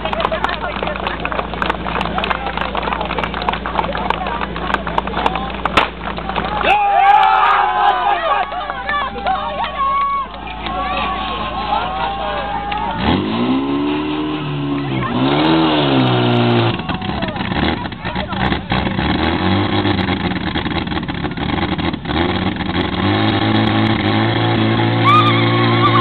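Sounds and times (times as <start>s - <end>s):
pump engine revving: 12.7s - 26.0s.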